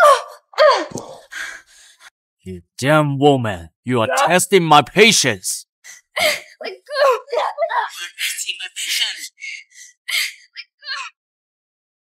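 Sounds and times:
woman panting: 0:00.0 - 0:02.1, 0:05.9 - 0:08.4, 0:09.4 - 0:10.5
woman crying out: 0:06.2 - 0:08.3.

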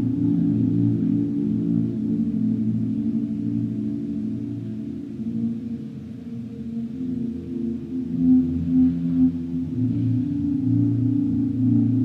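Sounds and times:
low electric guitar drone: 0:00.0 - 0:12.0.

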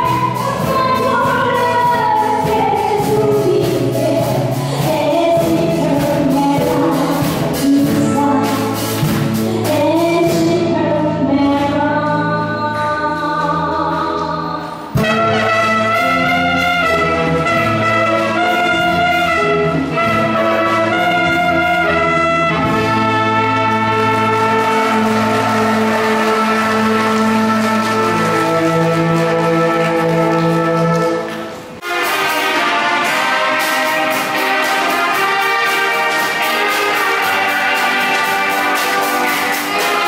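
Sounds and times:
woman singing: 0:00.0 - 0:15.4
saxophone and brass band: 0:14.9 - 0:40.0.

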